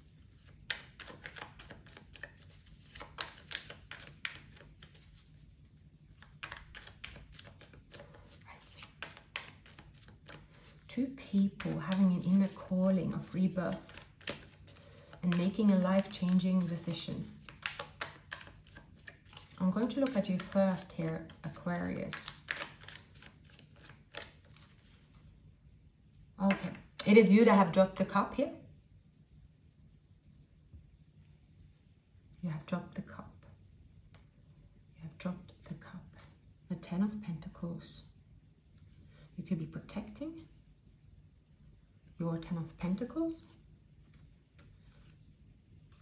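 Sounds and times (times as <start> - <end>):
cards clicking and sliding: 0.3 - 5.4, 6.2 - 25.1.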